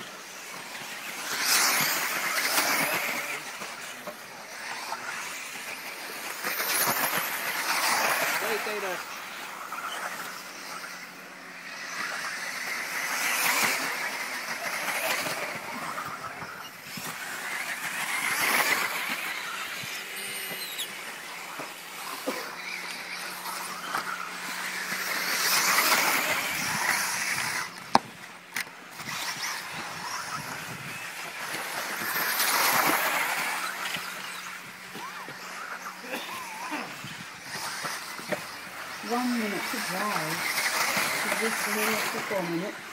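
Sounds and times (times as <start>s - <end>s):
high-pitched motor whine: 0.0s - 42.9s.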